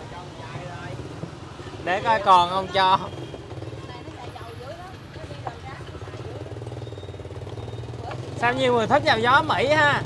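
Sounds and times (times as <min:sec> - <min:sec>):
motorbike engine hum: 0:00.0 - 0:10.0.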